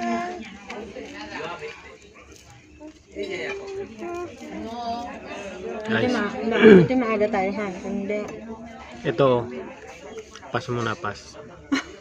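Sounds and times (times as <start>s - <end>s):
indistinct voices talking: 0.0s - 11.6s.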